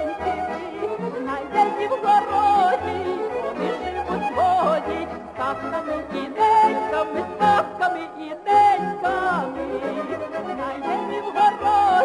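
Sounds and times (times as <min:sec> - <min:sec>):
folk ensemble with bass line: 0:00.0 - 0:12.0
woman singing with vibrato: 0:00.0 - 0:12.0.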